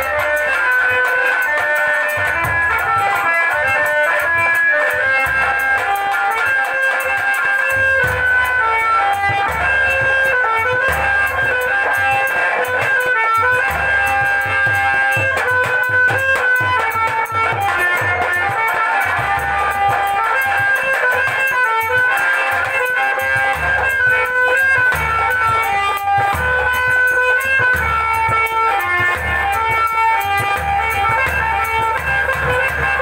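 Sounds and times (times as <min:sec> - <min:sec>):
hand-drum beats: 0:00.0 - 0:33.0.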